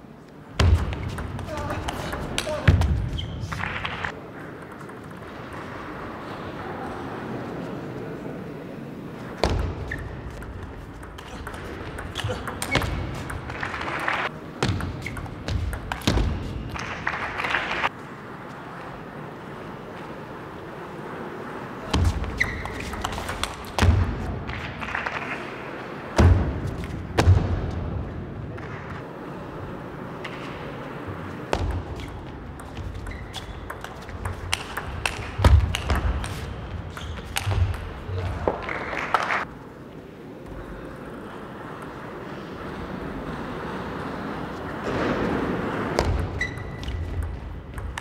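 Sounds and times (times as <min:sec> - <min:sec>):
crowd noise: 0:00.0 - 0:48.0.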